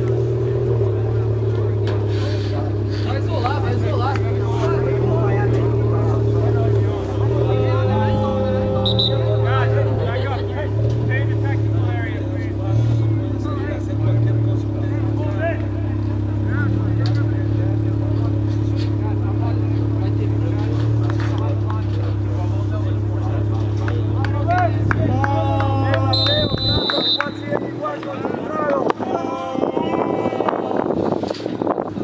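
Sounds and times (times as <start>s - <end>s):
people calling and chatting: 0.0s - 32.0s.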